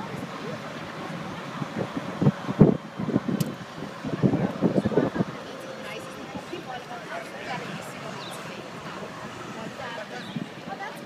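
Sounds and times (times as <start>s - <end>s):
moving car running noise: 0.0s - 11.0s
wind buffeting microphone: 0.0s - 11.0s.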